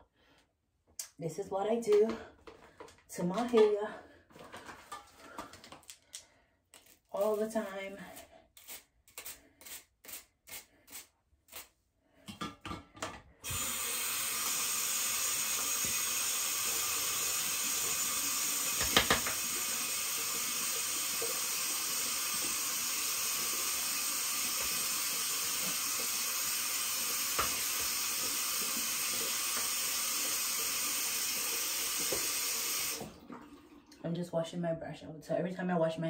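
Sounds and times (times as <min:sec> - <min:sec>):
water running from a tap: 0:13.4 - 0:34.0
hairbrush knocking: 0:18.8 - 0:19.4.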